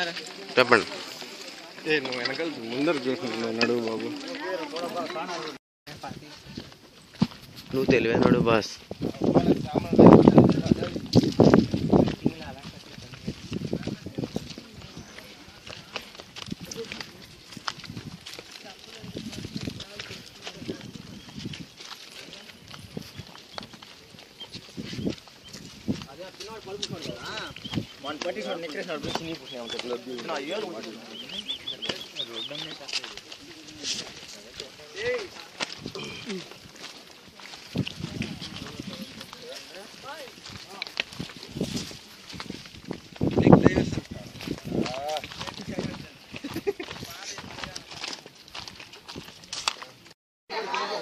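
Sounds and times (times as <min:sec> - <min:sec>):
footsteps on rocky trail: 0:00.0 - 0:51.0
group talking: 0:00.0 - 0:51.0.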